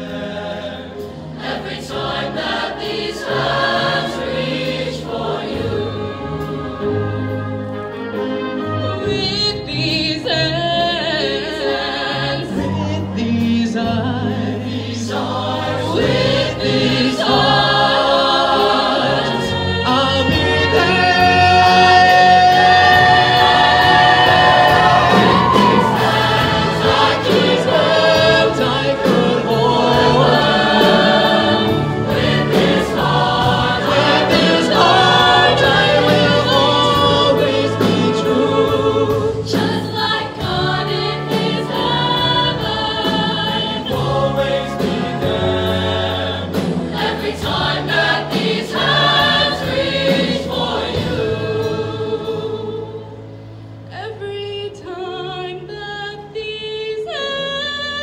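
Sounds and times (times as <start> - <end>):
choir singing in harmony: 0.0 - 58.0.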